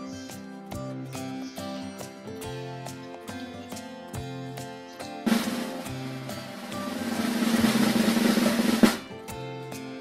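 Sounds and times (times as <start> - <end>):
background music: 0.0 - 10.0
snare drum roll: 5.3 - 9.1.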